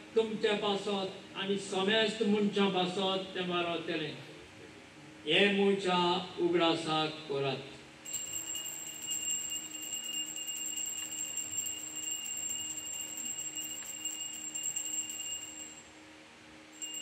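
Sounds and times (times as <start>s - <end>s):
altar bells jingling: 8.1s - 15.9s, 16.8s - 17.0s.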